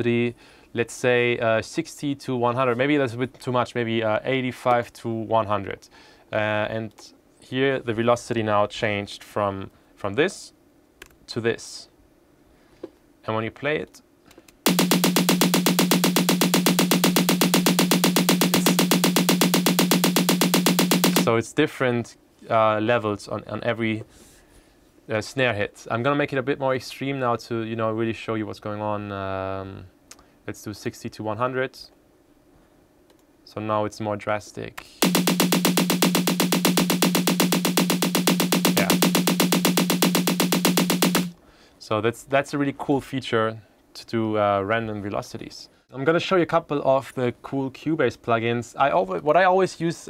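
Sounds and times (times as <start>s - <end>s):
fast snare drum hits: 14.7s - 21.3s, 35.0s - 41.4s.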